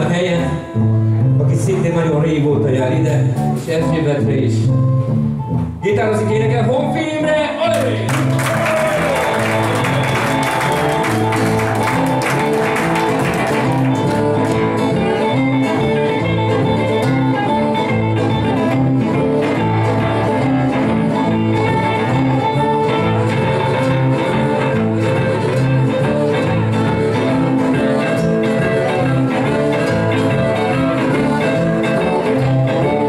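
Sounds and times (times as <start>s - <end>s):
acoustic and electric guitars: 0.0s - 7.2s, 7.9s - 33.0s
audience clapping: 7.7s - 33.0s
harmonica: 9.2s - 33.0s.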